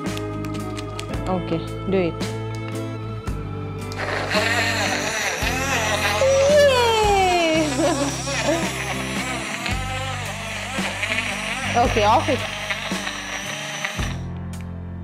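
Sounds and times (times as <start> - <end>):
background music with bass line: 0.0 - 15.0
portable blender whirring: 3.9 - 14.3.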